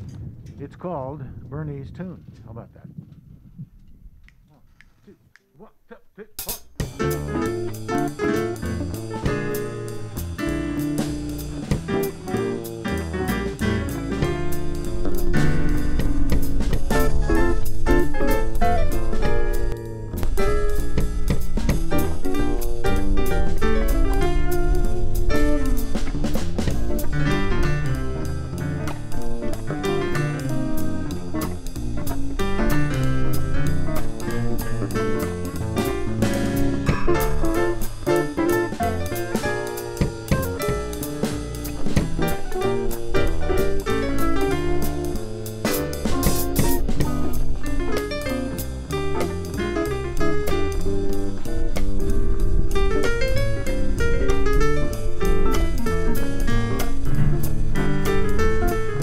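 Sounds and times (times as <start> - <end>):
drum kit with cymbals: 6.3 - 59.0
plucked upright bass: 6.4 - 59.0
electric guitar: 6.8 - 59.0
electric piano: 6.8 - 59.0.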